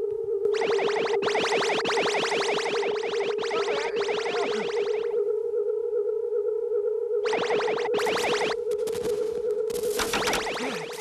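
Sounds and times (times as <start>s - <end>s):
electronic hum: 0.0s - 11.0s
sweeping electronic zaps: 0.5s - 5.2s, 7.2s - 11.0s.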